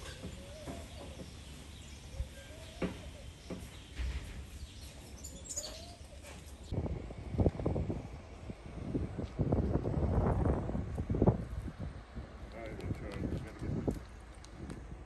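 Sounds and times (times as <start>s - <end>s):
birds calling faintly: 0.0s - 6.7s.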